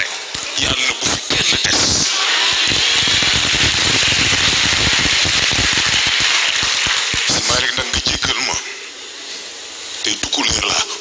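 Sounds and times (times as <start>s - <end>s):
audience applauding: 1.9s - 8.0s.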